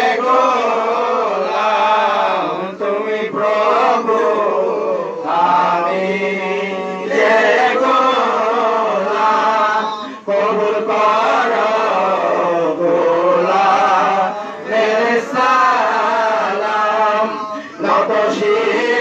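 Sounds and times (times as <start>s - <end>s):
men chanting: 0.0s - 19.0s
lead voice on microphone: 16.7s - 19.0s.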